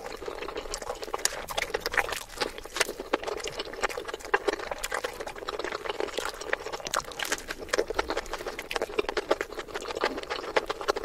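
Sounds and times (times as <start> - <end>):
sped-up chewing and mouth sounds: 0.0 - 11.0.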